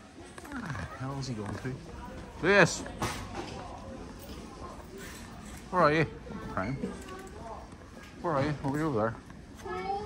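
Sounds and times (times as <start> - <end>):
faint background voices: 0.0 - 10.0.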